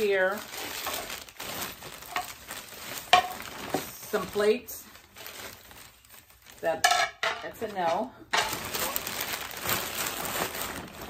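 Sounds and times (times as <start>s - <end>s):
wrapping rustling and crinkling: 0.0s - 11.0s.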